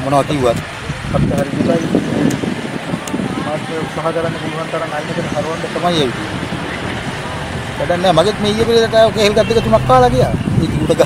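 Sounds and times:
outdoor background noise: 0.0 - 11.0
man's voice: 7.8 - 11.0.

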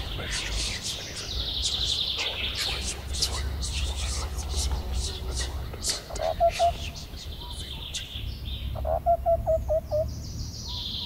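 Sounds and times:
steady low rumble: 0.0 - 10.6
birds chirping: 0.0 - 11.0.

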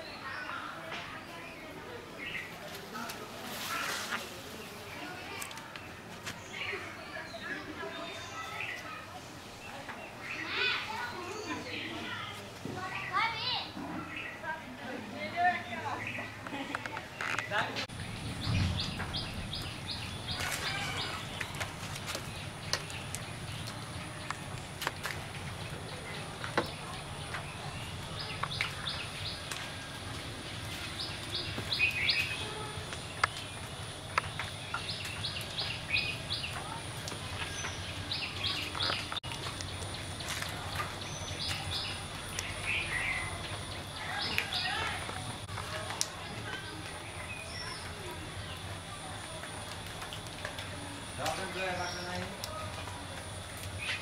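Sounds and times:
birds chirping: 0.0 - 54.0
outdoor background noise: 0.0 - 54.0
steady low background noise: 0.0 - 54.0.

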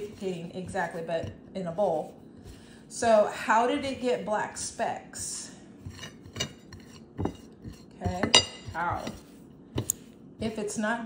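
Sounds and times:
hands working dough: 0.0 - 11.0.

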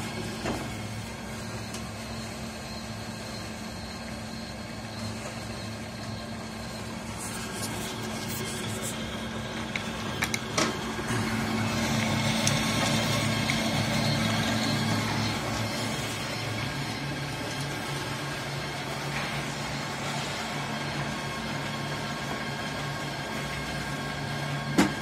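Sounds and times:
machinery humming: 0.0 - 25.0.

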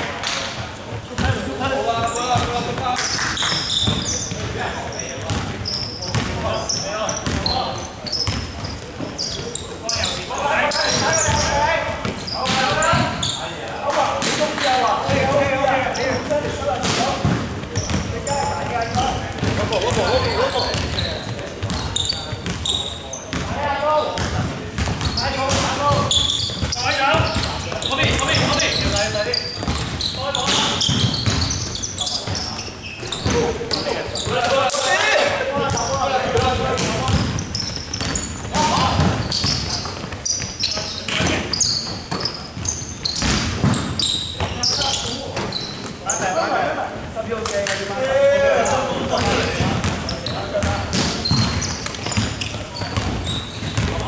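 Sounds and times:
people talking and calling out: 0.0 - 54.0
basketball bouncing on wooden floor: 3.7 - 4.6, 5.2 - 7.6, 8.2 - 8.8, 16.4 - 22.6, 23.3 - 23.5, 24.2 - 32.4, 35.6 - 44.6, 49.2 - 54.0.

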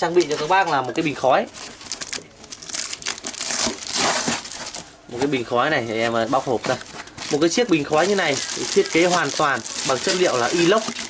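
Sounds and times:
cardboard box being torn open: 1.9 - 4.9.

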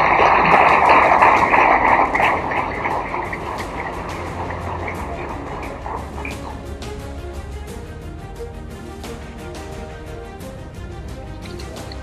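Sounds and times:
audience applauding: 0.0 - 7.2.

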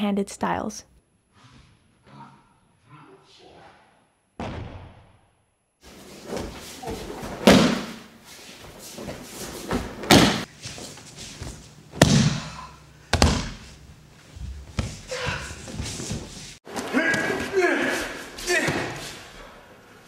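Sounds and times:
bodies thudding on a mat: 5.9 - 8.1, 9.0 - 13.7, 14.4 - 16.4.

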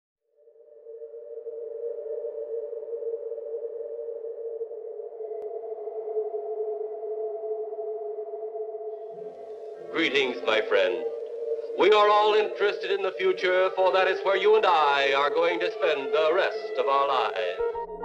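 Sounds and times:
faint high electronic tone: 0.4 - 18.0
low electronic drone: 0.7 - 18.0.

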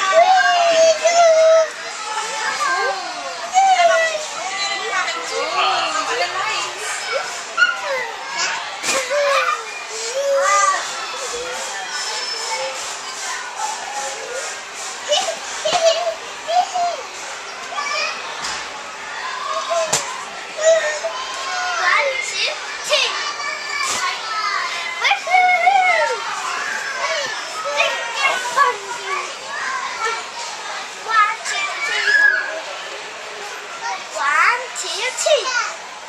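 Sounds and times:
young children calling and babbling: 0.0 - 36.0.

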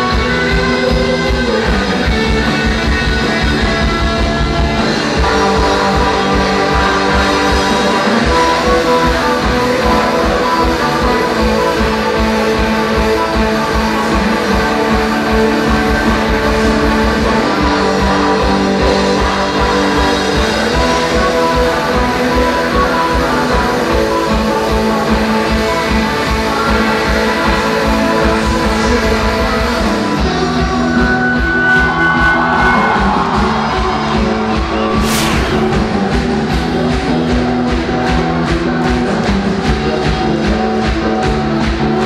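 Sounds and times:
live pop-rock band playing: 0.0 - 42.0
low drum beat: 34.8 - 37.3
cymbal crash: 34.9 - 37.3.

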